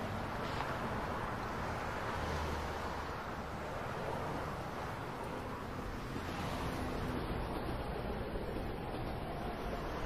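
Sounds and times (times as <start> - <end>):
subway train running: 3.6 - 10.0.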